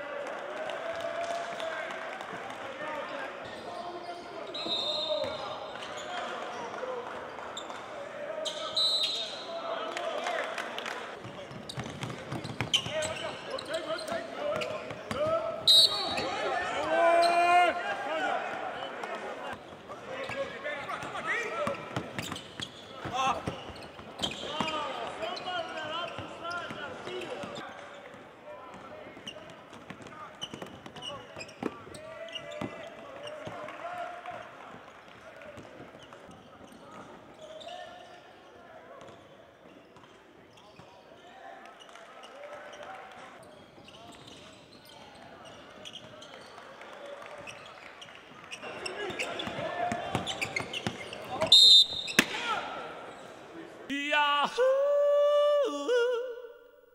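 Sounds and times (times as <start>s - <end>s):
players shouting in echoing hall: 0.0s - 11.5s, 12.7s - 27.9s, 48.6s - 56.9s.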